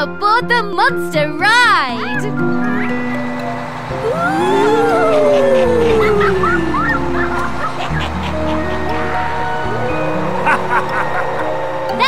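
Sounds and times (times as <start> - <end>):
background music: 0.0 - 12.0
wavering howl: 2.4 - 12.0
short rising chirps: 2.5 - 10.4.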